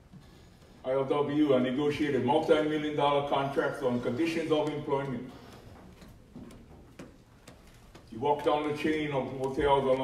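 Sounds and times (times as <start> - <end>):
soft regular ticks: 4.5 - 10.0.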